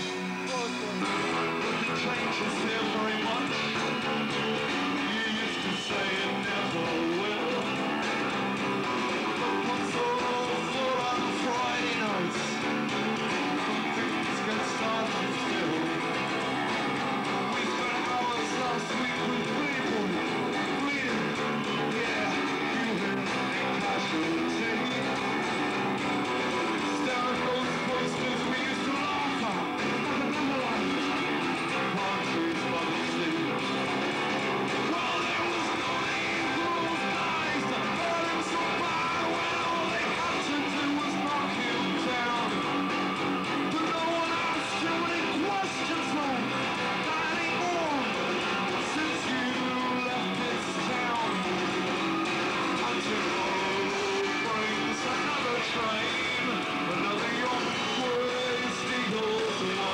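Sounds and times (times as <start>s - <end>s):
live rock band playing: 0.0s - 59.9s
man singing: 0.0s - 59.9s
strummed acoustic guitar: 0.0s - 59.9s.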